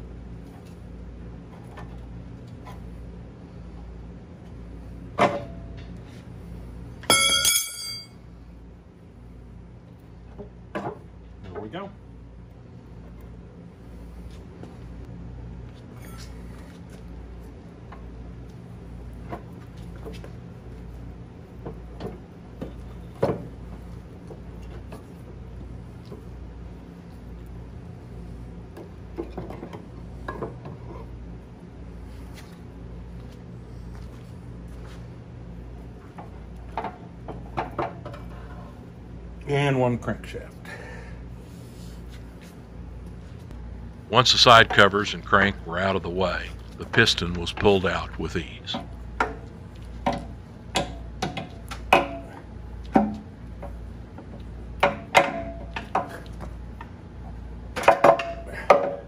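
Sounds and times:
steady low hum: 0.0 - 59.0
metal clinks and knocks: 7.1 - 8.1
ringing metallic clang: 7.1 - 8.1.

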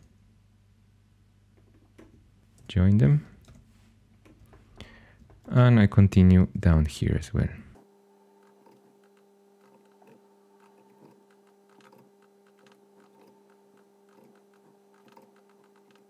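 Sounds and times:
electrical hum: 0.0 - 16.0
mouse and keyboard clicks: 8.4 - 16.0.

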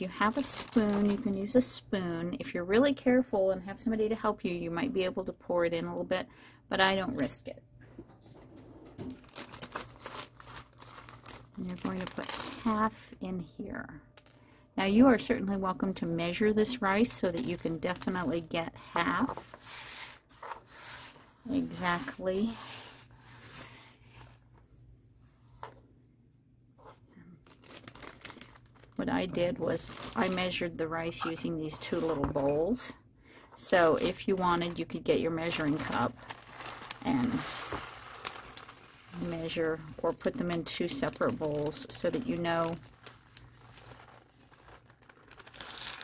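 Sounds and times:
plastic bag crinkling: 0.0 - 1.6, 8.2 - 13.0, 17.0 - 18.6, 27.4 - 32.5, 33.8 - 46.0
rustling and handling noises: 0.0 - 1.7, 7.1 - 13.2, 15.2 - 25.9, 26.7 - 46.0.

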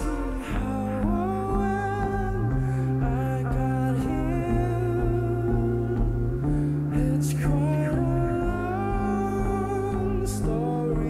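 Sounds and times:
bass note: 0.0 - 11.0
person singing or humming: 0.0 - 11.0
synthesizer chords: 0.0 - 11.0.

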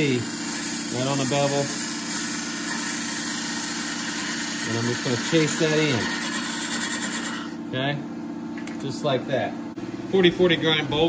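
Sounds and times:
tool cutting spinning wood: 0.0 - 7.6
wood lathe motor hum: 0.0 - 7.6.

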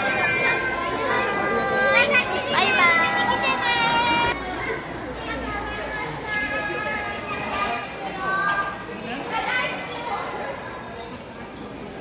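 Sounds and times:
excited voices calling out: 0.0 - 4.4.

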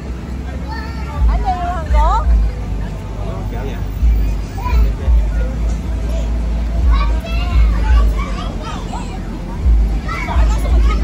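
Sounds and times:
children calling and chattering: 0.0 - 11.0
heavy low rumble: 0.0 - 11.0.

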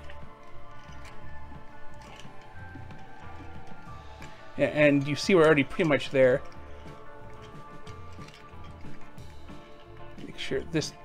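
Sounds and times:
background music with bass pulse: 0.0 - 11.0.

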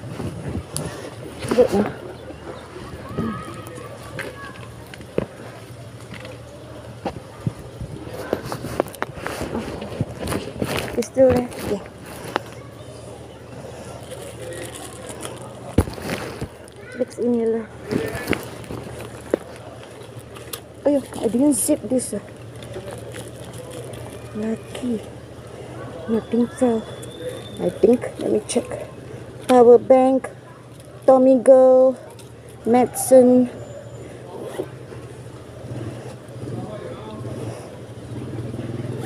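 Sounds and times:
faint voices: 0.0 - 39.0
woman speaking: 10.9 - 11.9, 20.9 - 22.2, 27.6 - 28.9, 29.5 - 30.3, 32.7 - 33.5.

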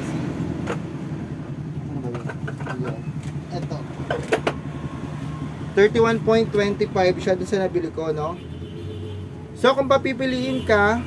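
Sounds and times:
clicks and knocks of handling: 2.0 - 4.6.

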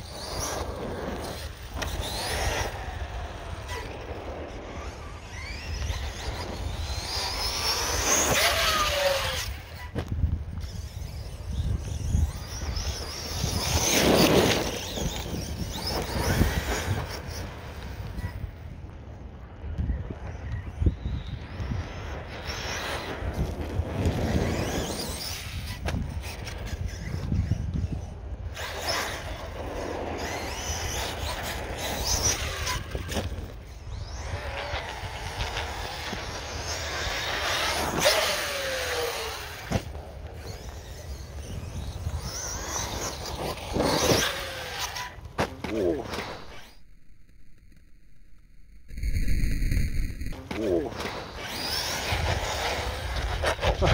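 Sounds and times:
tyre noise: 19.9 - 53.9.

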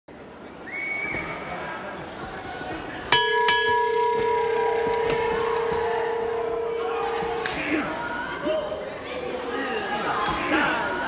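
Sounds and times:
ring bell ringing: 3.1 - 7.5.

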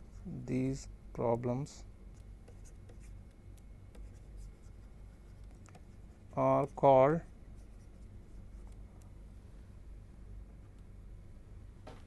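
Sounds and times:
low steady hum: 0.0 - 12.0
stylus tapping and scratching: 2.1 - 9.1.

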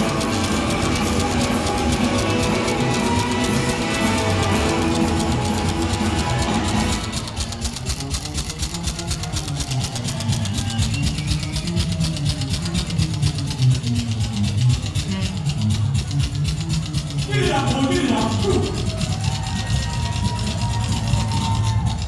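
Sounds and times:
electric guitar: 0.0 - 10.7
bass guitar: 0.0 - 22.0
fast drum beat: 0.0 - 22.0.

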